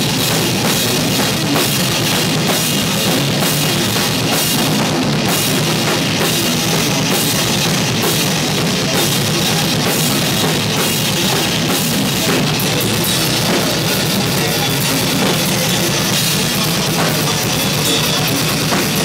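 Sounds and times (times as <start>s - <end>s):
drum kit with cymbals: 0.0s - 19.0s
electric guitar: 0.0s - 19.0s
heavy rock band playing: 0.0s - 19.0s.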